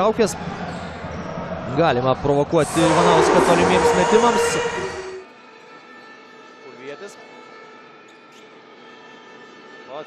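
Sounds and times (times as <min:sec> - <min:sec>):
steady tonal hum: 0:02.4 - 0:05.3
commentator speaking: 0:02.6 - 0:05.1.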